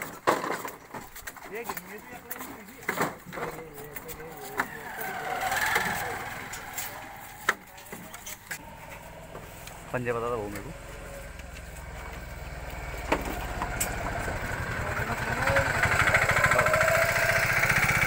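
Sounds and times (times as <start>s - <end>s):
background voices: 1.4s - 12.3s.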